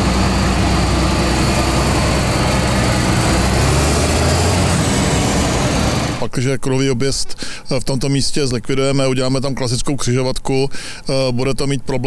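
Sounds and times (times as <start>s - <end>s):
tyre and traffic noise: 0.0s - 6.2s
truck diesel engine driving past: 0.0s - 6.3s.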